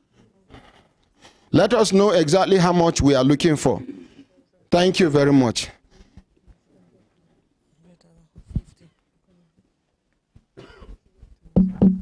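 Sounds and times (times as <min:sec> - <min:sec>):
person coughing: 0:03.8 - 0:04.4, 0:10.6 - 0:11.0.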